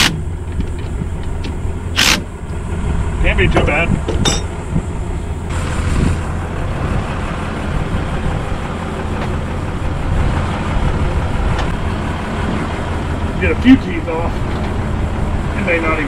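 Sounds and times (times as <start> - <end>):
engine idling hum: 0.0 - 16.0.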